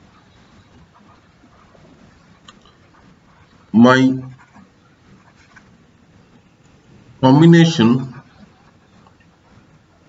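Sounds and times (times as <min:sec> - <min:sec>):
stylus scratching on tablet: 0:00.0 - 0:10.0.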